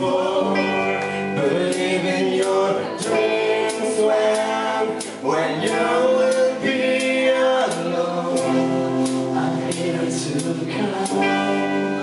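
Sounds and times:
electric guitar: 0.0 - 12.0
person singing: 0.0 - 12.0.

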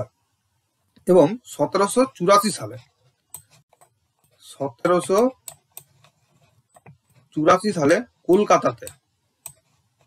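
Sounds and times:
person speaking: 1.0 - 3.6, 4.2 - 9.6.

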